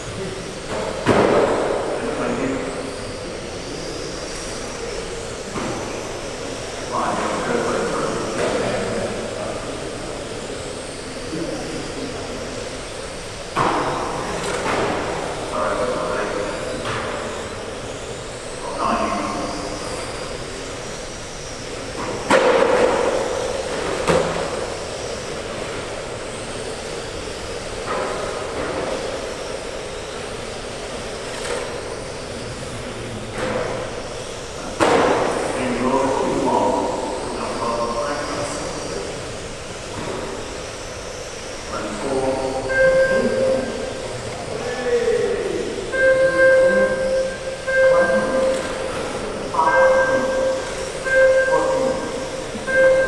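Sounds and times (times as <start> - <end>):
indistinct echoing voices: 41.7 - 53.0.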